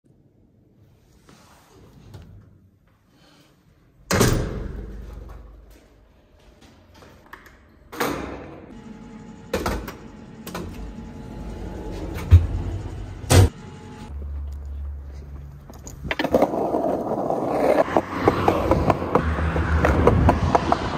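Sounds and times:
skateboard wheels rolling: 15.6s - 20.9s.

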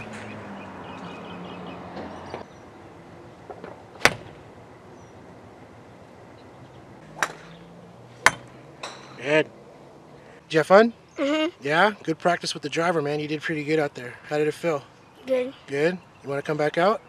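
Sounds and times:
golf club striking ball: 3.6s - 4.5s, 7.0s - 9.2s.

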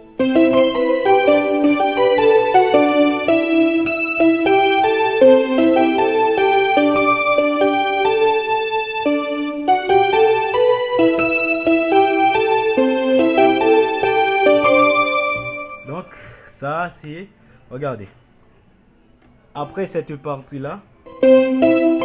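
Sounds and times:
electronic keyboard playing: 0.0s - 16.2s, 21.0s - 22.0s.

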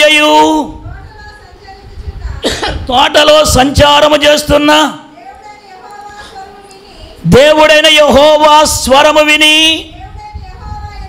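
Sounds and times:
man preaching through microphone: 0.0s - 0.8s, 2.8s - 5.1s, 7.2s - 9.9s
low room rumble: 0.0s - 11.0s.

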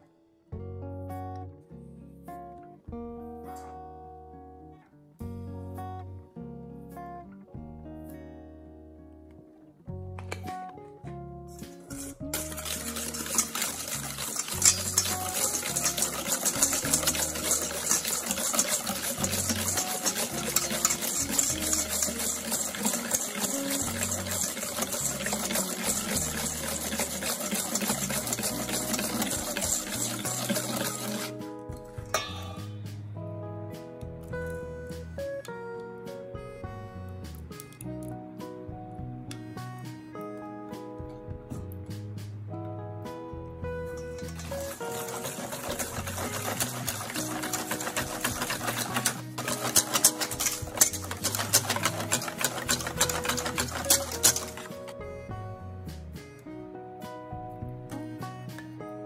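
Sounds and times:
guitar music: 0.0s - 59.0s
wire whisk scraping metal bowl: 11.9s - 31.4s, 32.0s - 32.8s, 43.9s - 55.0s.

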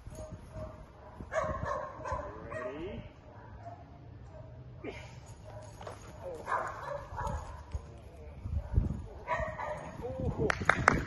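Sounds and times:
dog barking: 0.2s - 4.6s, 5.4s - 7.7s, 8.5s - 10.0s.

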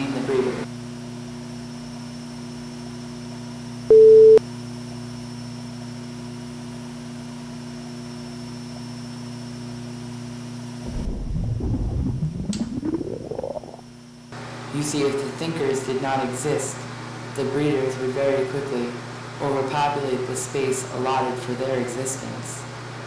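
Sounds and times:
low electrical hum: 0.0s - 23.0s
loud pure-tone beep: 3.9s - 4.4s
low rumble rising in pitch: 10.8s - 14.0s.

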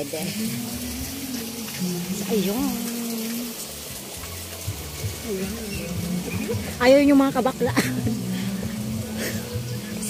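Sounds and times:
water hiss: 0.0s - 10.0s.

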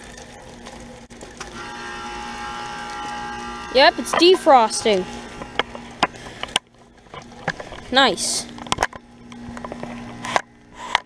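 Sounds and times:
heat pump low hum: 0.0s - 11.0s.

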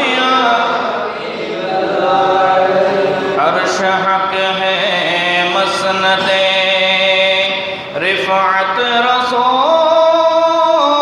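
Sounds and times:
man chanting into microphone: 3.2s - 11.0s.

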